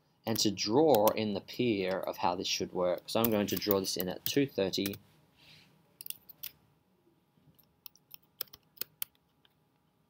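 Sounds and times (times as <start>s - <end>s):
keyboard and mouse clicking: 0.3s - 1.2s, 3.2s - 5.0s, 6.0s - 6.5s, 7.6s - 9.6s.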